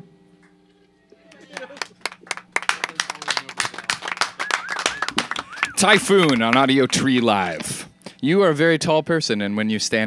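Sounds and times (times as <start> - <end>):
small group clapping: 1.3 - 7.9
man talking: 2.7 - 4.0, 5.5 - 10.0
high rising and falling calls: 3.7 - 7.6.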